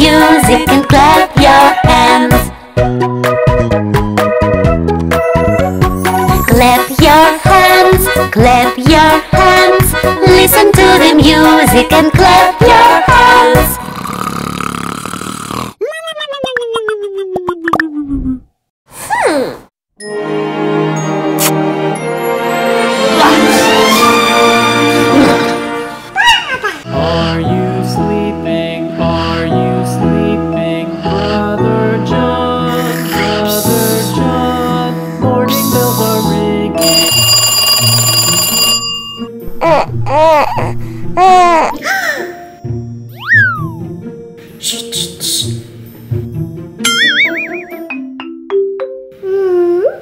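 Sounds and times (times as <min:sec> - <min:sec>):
background music: 0:00.0 - 0:14.0, 0:20.0 - 0:49.8
toy telephone electronic ring: 0:36.8 - 0:39.3.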